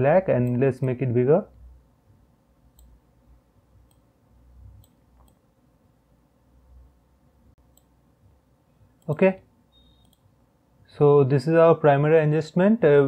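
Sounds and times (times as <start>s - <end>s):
computer mouse clicks: 2.7s - 3.0s, 3.8s - 4.1s, 4.8s - 5.4s, 7.6s - 8.0s, 9.9s - 10.3s.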